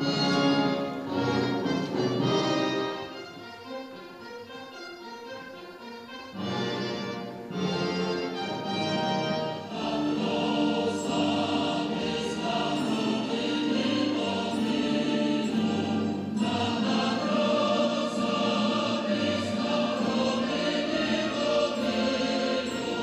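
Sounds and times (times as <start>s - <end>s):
choir singing slow solemn piece: 6.4s - 23.0s.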